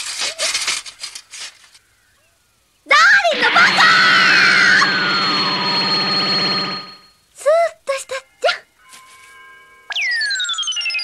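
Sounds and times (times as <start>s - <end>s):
high whine: 3.2s - 7.1s
electric shock buzz: 3.3s - 7.0s
whistling tone sliding down: 3.3s - 7.1s.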